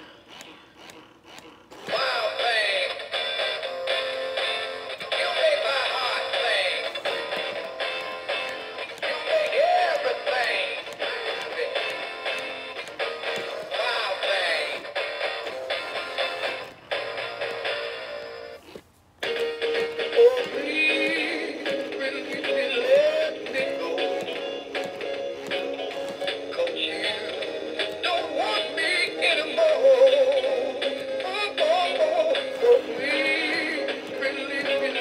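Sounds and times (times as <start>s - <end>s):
toy voice singing: 0.0s - 16.7s, 19.8s - 35.0s
song from small speaker: 0.0s - 18.6s, 19.2s - 35.0s
backing music: 1.9s - 18.6s, 19.2s - 35.0s.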